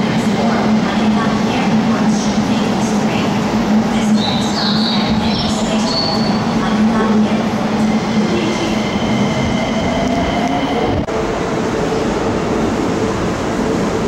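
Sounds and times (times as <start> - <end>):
electric train rumbling: 0.0 - 14.0.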